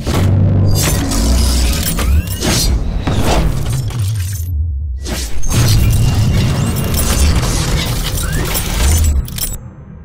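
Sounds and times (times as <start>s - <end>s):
metallic shattering effects: 0.7s - 9.6s.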